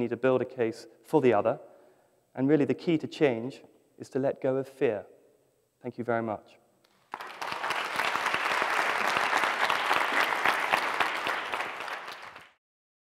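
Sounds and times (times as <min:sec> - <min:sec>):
audience applauding: 0:07.0 - 0:12.6.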